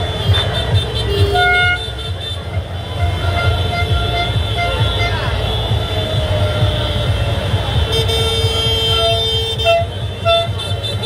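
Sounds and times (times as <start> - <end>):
vehicle horn tooting: 0.0 - 7.0, 7.9 - 11.0
celebrating street crowd: 0.0 - 11.0.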